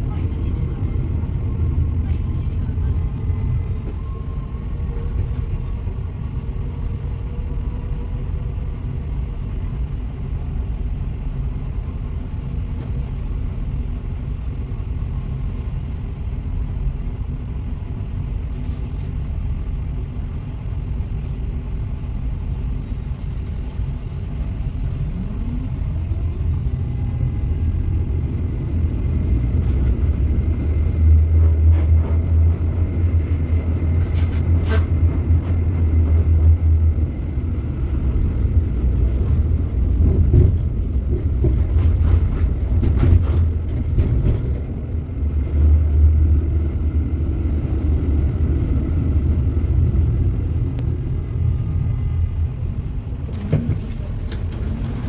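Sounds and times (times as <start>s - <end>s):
tram low rumble: 0.0s - 55.0s.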